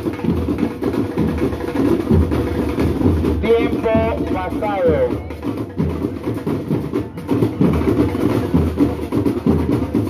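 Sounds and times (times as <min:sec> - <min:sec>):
marching drum line: 0:00.0 - 0:10.0.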